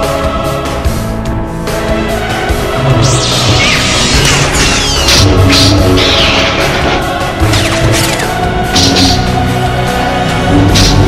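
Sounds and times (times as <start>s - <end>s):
electronic music with heavy bass: 2.9s - 9.4s.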